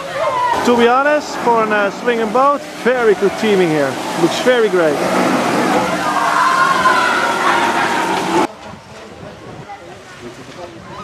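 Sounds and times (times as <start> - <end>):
people's voices and shouts: 0.0 - 4.8, 5.7 - 8.5
waterfall rushing: 0.0 - 8.5.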